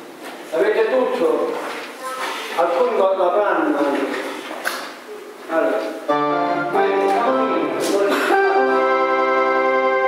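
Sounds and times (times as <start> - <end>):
electronic organ playing chords: 6.1 - 10.0.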